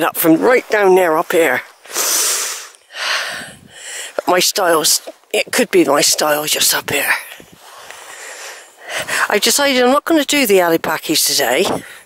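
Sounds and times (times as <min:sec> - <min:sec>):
woman's breathy exhale: 0:01.9 - 0:04.1.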